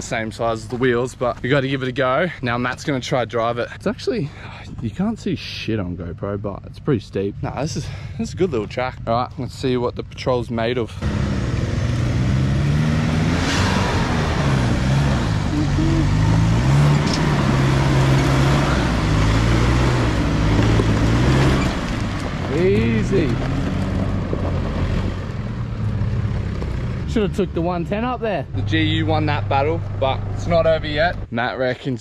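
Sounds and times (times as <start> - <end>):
engine labouring under heavy load: 10.7 - 31.3.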